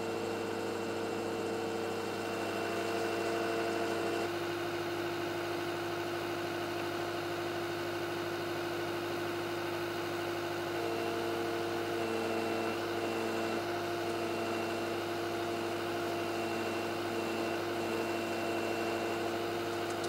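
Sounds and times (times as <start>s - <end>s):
heavy equipment engine running: 18.8s - 20.0s.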